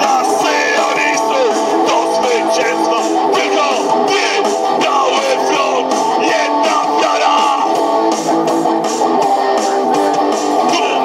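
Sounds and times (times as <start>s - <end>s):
man shouting vocals: 0.0s - 7.8s, 10.6s - 11.0s
electric guitar: 0.0s - 11.0s
live rock music through speakers: 0.0s - 11.0s.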